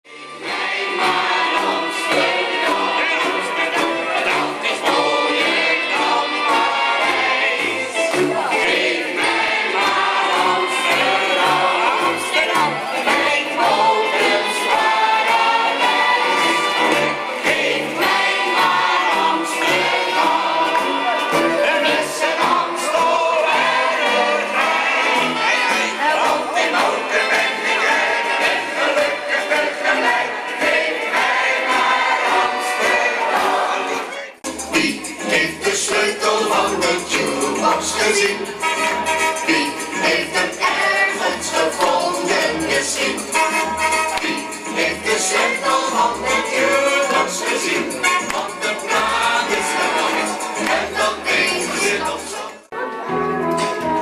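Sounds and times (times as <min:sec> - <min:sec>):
voices singing with backing music: 0:00.1 - 0:52.9
pop song over pa system: 0:00.1 - 0:54.0.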